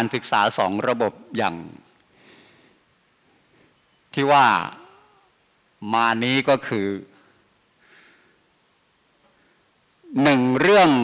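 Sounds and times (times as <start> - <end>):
man speaking into microphone: 0.0 - 1.9, 4.1 - 5.0, 5.8 - 7.2, 10.1 - 11.0.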